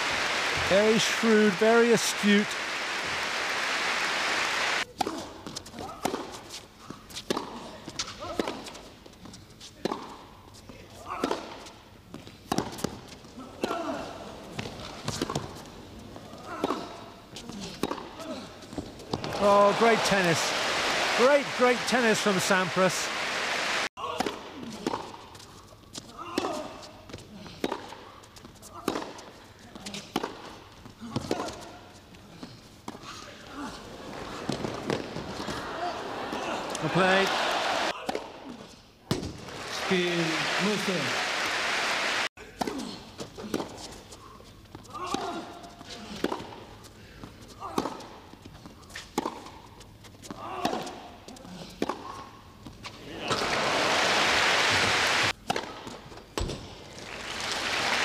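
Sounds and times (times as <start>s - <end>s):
crowd applause: 0.0s - 4.8s, 19.2s - 23.9s, 34.0s - 37.9s, 39.4s - 42.3s, 53.1s - 55.3s, 57.0s - 58.0s
tennis ball bouncing: 4.9s - 8.8s, 9.8s - 10.2s, 11.1s - 13.8s, 14.6s - 15.7s, 16.4s - 18.2s, 27.6s - 31.6s, 34.5s - 35.6s, 47.7s - 51.0s, 55.3s - 56.8s
rackets hitting tennis ball: 4.9s - 8.9s, 9.7s - 10.2s, 10.8s - 22.4s, 23.2s - 33.2s, 34.1s - 40.8s, 44.6s - 53.7s, 55.3s - 58.0s.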